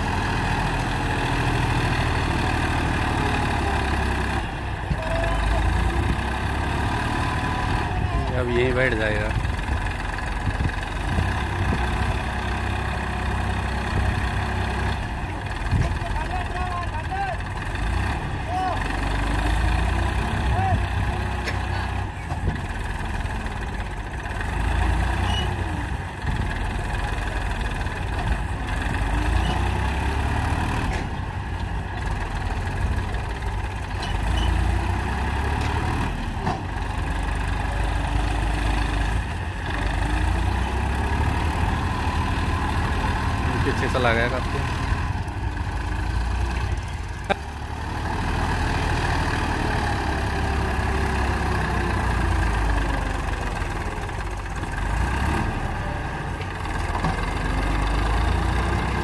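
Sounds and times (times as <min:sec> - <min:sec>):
diesel tractor engine under load: 0:00.0 - 0:59.0.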